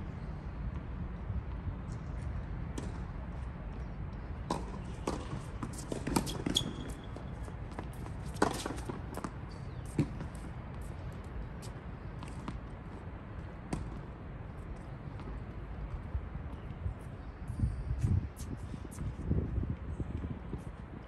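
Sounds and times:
tennis balls struck and bouncing: 3.8 - 16.6.

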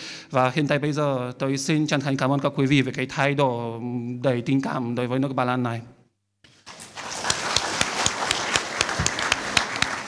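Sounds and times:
audience applauding: 6.5 - 10.0.

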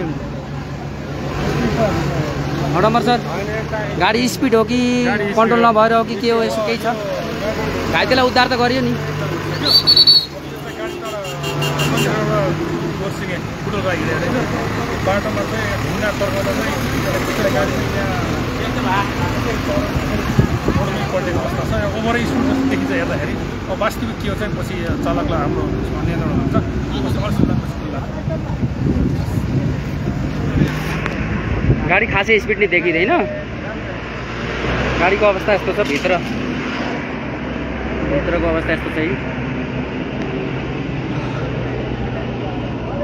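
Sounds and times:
large vehicle engine humming: 0.0 - 43.0
voices talking: 0.0 - 43.0.

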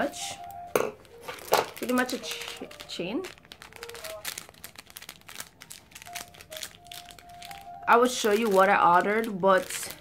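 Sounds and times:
plastic bag crinkling: 0.4 - 10.0.

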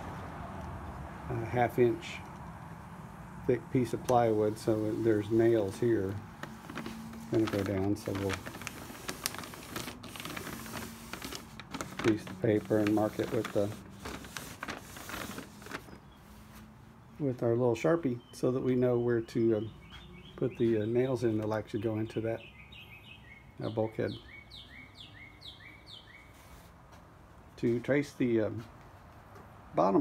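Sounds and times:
paper rustling and crinkling: 3.8 - 16.7.

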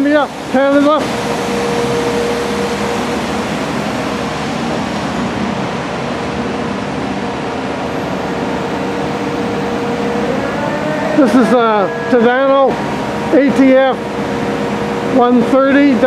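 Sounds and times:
city street traffic: 0.0 - 16.0
engine hum: 0.0 - 16.0.

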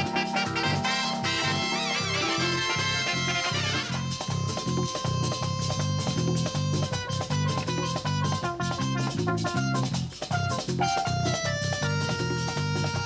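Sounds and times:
merengue band playing: 0.0 - 13.0
synthesizer keyboard melody: 0.0 - 13.0.

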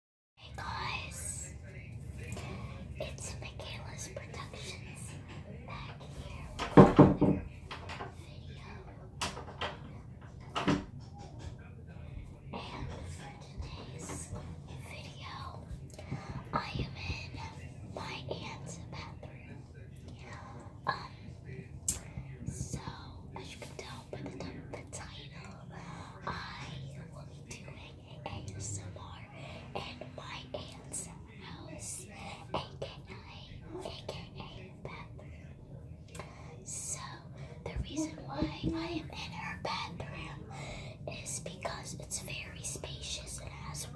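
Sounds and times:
girl whispering: 0.4 - 1.5, 2.3 - 6.8, 12.6 - 19.4, 20.2 - 21.3, 22.6 - 35.3, 36.2 - 43.9.

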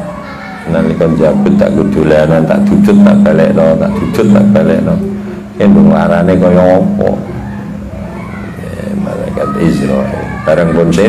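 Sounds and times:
man talking: 0.7 - 7.4, 8.6 - 11.0.

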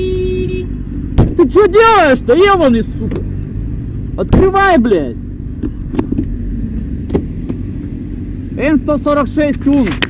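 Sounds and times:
engine running at low revs: 0.0 - 10.0.

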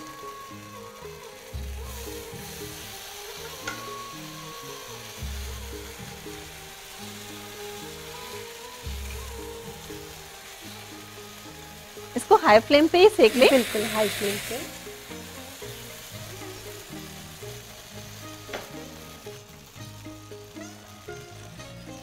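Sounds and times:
background music: 0.0 - 22.0
bread sizzling on a grill pan: 0.0 - 22.0.

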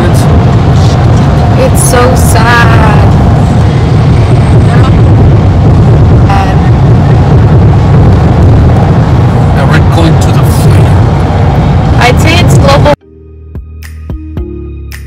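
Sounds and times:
car road and wind noise: 0.0 - 13.0.

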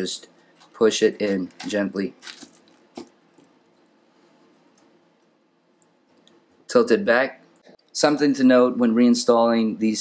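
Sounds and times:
faint handling noise: 0.5 - 6.4.

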